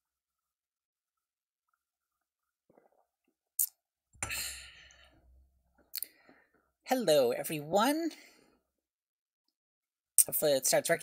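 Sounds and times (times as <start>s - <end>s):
woman speaking: 6.9s - 8.3s, 10.2s - 11.0s.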